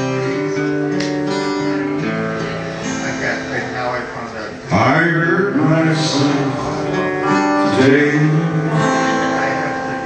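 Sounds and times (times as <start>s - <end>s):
fingerpicked acoustic guitar: 0.0s - 10.0s
man singing: 4.6s - 10.0s.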